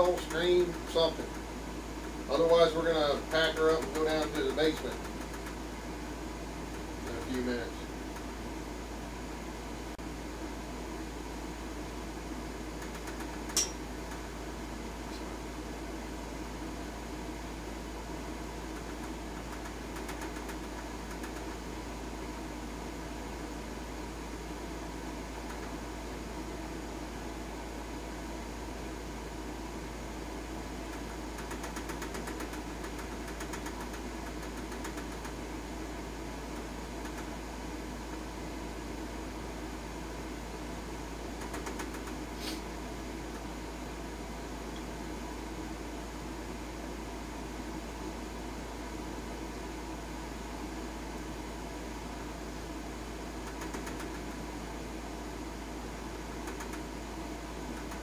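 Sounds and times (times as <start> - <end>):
background hum and hiss: 0.0 - 58.0.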